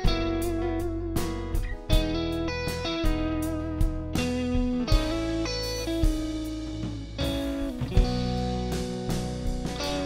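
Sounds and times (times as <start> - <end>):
bass and drums: 0.0 - 10.0
drum hits: 0.0 - 10.0.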